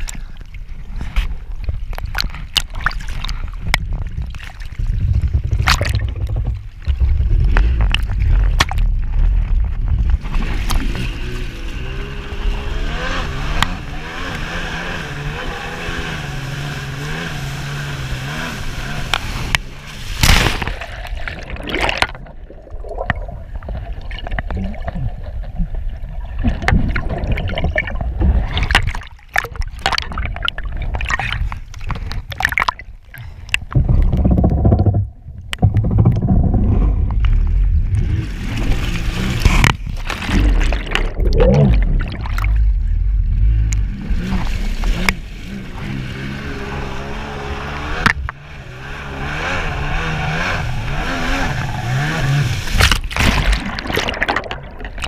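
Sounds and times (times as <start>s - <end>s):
water rushing over microphone: 0.0s - 55.0s
jet ski engine rumble: 3.3s - 55.0s
jet ski engine: 10.2s - 20.3s, 37.8s - 40.2s, 42.5s - 53.1s.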